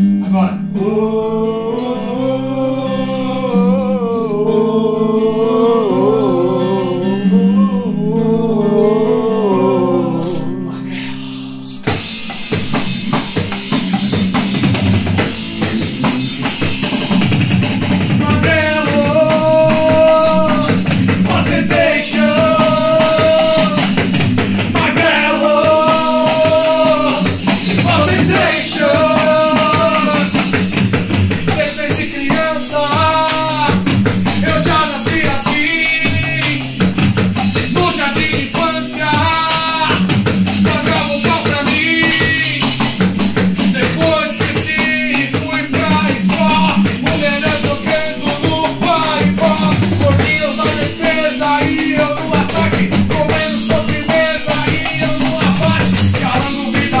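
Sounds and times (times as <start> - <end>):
electric guitar lead melody: 0.0 - 38.1
bass notes: 0.0 - 57.0
drum kit beat: 11.7 - 57.0.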